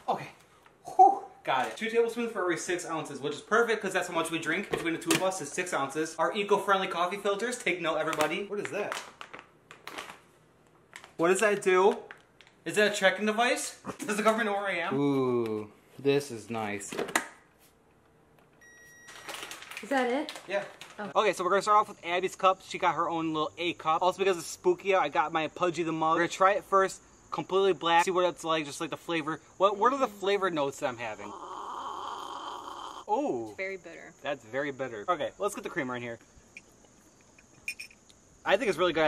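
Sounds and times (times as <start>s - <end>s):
coffee maker beep: 18.6s - 19.4s, 37.6s - 38.0s.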